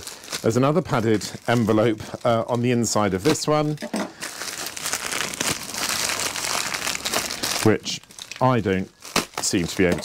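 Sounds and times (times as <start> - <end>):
padded envelope crinkling: 0.0 - 10.0.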